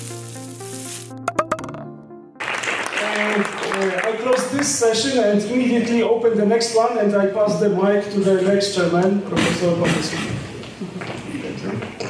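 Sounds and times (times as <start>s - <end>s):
logo jingle held notes: 0.0s - 2.8s.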